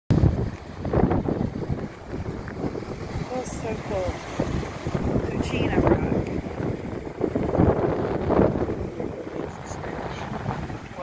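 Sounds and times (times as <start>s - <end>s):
ocean surf washing: 0.1s - 11.0s
wind buffeting microphone: 0.1s - 11.0s.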